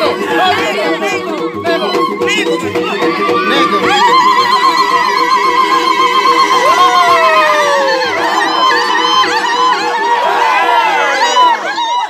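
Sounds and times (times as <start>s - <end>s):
women ululating: 3.4s - 12.0s.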